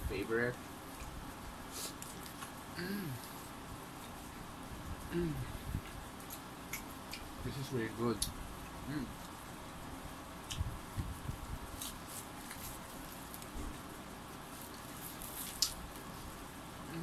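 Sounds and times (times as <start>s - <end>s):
quiet chewing: 0.8s - 4.5s, 5.7s - 7.3s, 11.7s - 16.3s.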